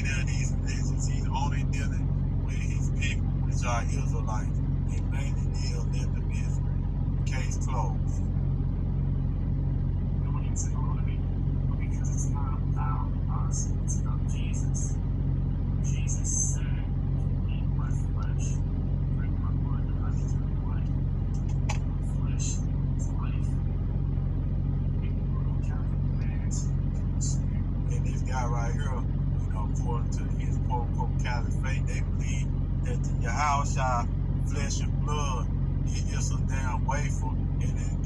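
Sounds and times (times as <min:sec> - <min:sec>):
faint indistinct speech: 0:00.0 - 0:08.2, 0:10.2 - 0:14.9, 0:15.8 - 0:18.6, 0:19.2 - 0:23.5, 0:25.0 - 0:38.0
steady low hum: 0:00.0 - 0:38.0.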